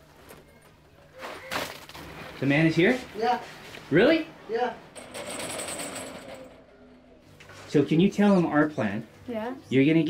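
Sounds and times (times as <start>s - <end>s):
metal roll-up shutter rattling down: 4.9s - 6.7s.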